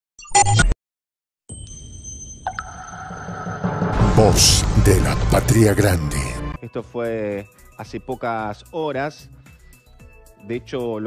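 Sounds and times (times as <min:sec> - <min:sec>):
electronic intro music: 0:02.2 - 0:06.6
low synthesized drone: 0:02.5 - 0:06.6.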